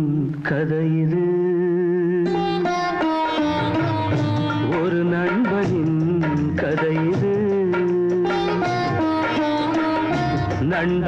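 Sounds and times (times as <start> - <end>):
string instrument melody: 2.2 - 11.0
continuous musical accompaniment: 2.3 - 11.0.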